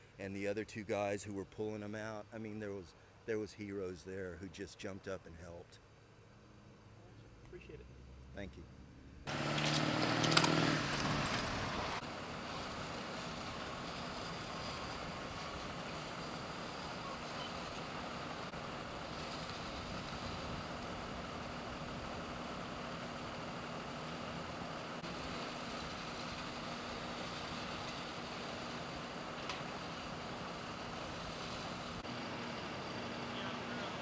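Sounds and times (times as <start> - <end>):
faint low engine hum: 0.0 - 34.0.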